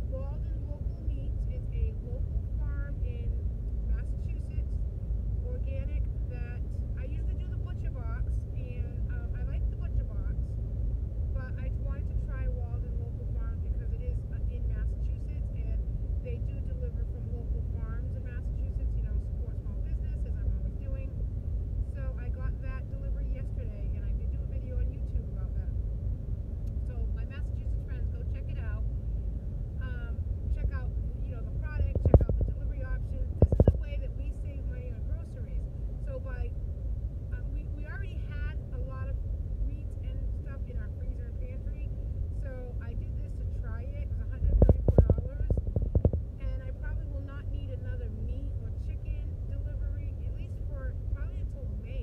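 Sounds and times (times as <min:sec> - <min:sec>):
woman talking: 0:00.0 - 0:04.8, 0:05.4 - 0:10.5, 0:11.4 - 0:21.2, 0:21.9 - 0:25.8, 0:26.8 - 0:28.8, 0:29.8 - 0:36.5, 0:37.3 - 0:52.0
car cabin road rumble: 0:00.0 - 0:52.0.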